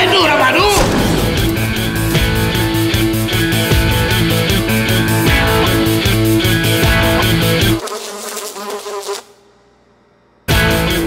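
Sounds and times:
fly buzzing: 0:03.8 - 0:09.5.

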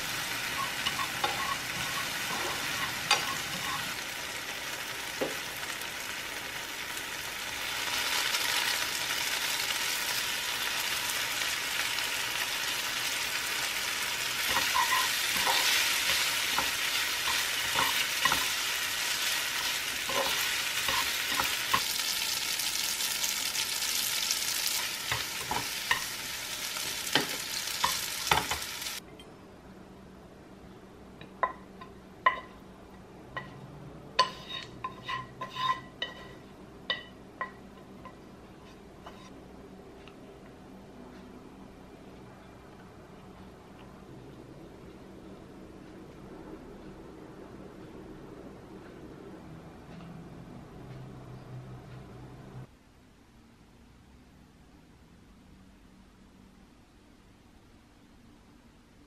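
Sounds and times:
vegetables sizzling in oil: 0:00.0 - 0:29.0
chopsticks clicking and scraping pan: 0:00.6 - 0:03.9, 0:14.4 - 0:22.0, 0:24.7 - 0:28.7.

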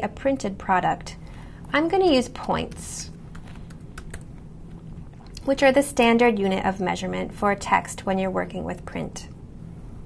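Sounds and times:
computer keyboard typing: 0:02.7 - 0:04.4.

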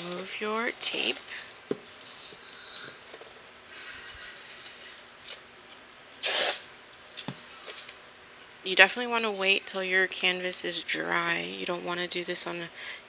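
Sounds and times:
tape ripping: 0:06.2 - 0:07.9.

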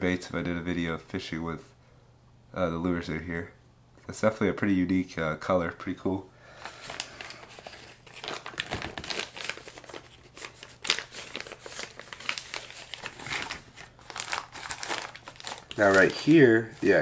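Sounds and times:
plastic bags crinkling: 0:06.6 - 0:17.0.

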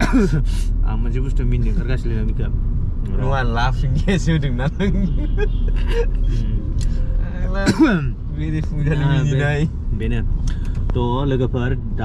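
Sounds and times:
low rumble of car in motion: 0:00.0 - 0:12.0
person talking: 0:03.1 - 0:10.2.

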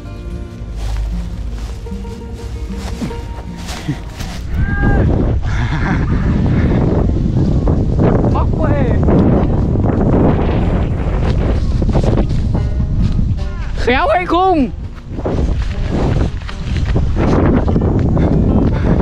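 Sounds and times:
wind on microphone: 0:00.7 - 0:19.0
kite flutes holding tones: 0:01.0 - 0:05.4.

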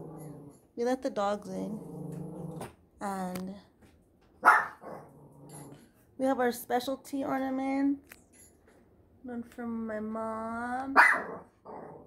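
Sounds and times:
dog growling: 0:00.0 - 0:00.7, 0:01.5 - 0:02.8, 0:04.7 - 0:05.9, 0:11.0 - 0:12.0
dog barking: 0:04.4 - 0:05.1, 0:11.0 - 0:11.9.

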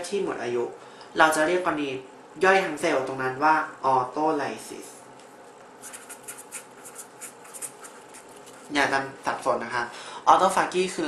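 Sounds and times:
pen scratching on surface: 0:05.8 - 0:08.7.

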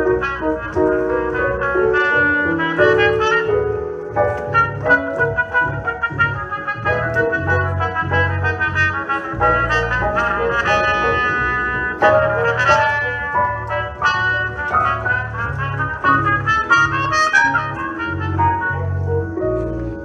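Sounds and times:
bass line: 0:00.0 - 0:20.0
keyboard accompaniment: 0:00.0 - 0:20.0
trumpet melody: 0:00.0 - 0:20.0.

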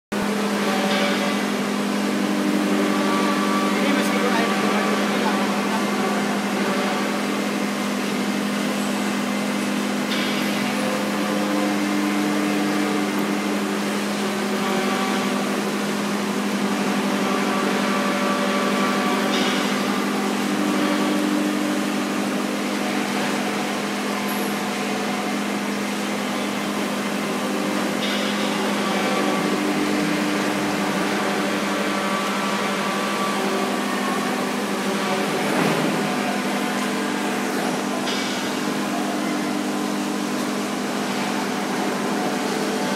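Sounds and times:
electric pump humming: 0:00.1 - 0:42.9.

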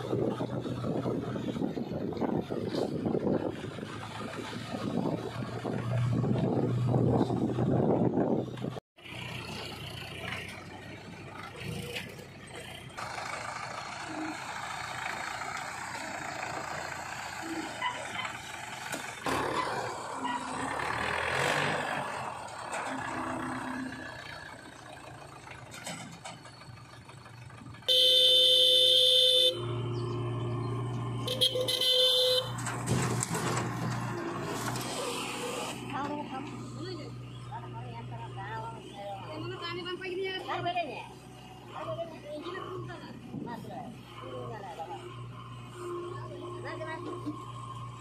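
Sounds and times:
diesel tractor engine running: 0:00.0 - 0:48.0
vehicle horn blaring: 0:27.9 - 0:29.6, 0:31.2 - 0:32.6.

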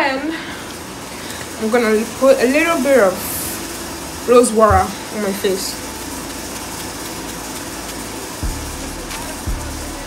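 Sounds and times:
steady background hiss: 0:00.0 - 0:10.0
soft low thumps: 0:04.7 - 0:05.0.

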